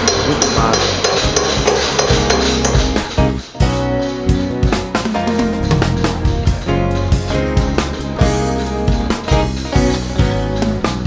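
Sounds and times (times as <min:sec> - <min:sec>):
hammers clanging on metal: 0:00.0 - 0:11.0
music playing: 0:00.0 - 0:11.0.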